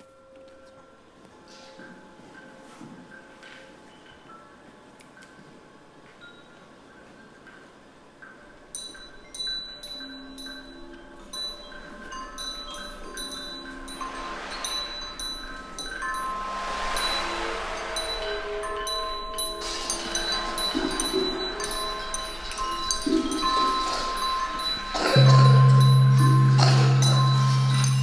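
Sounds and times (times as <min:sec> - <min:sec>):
chime-like percussion notes: 0:00.0 - 0:28.0
hissing rushing sound: 0:13.9 - 0:22.7.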